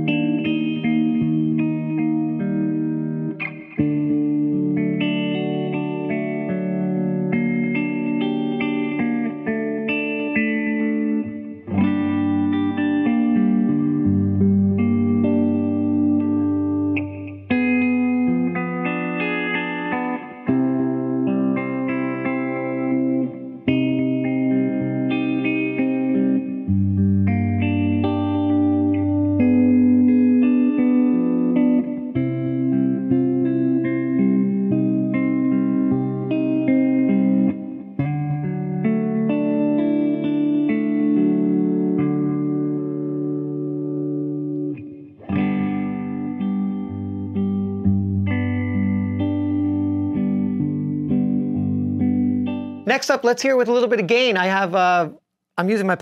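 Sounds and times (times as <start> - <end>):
electric guitar chords: 0.0 - 56.0
guitar bass notes: 0.0 - 56.0.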